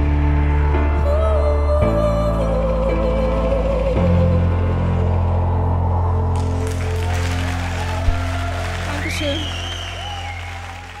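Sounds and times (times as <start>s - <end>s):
background music: 0.0s - 11.0s
audience applause: 6.4s - 11.0s.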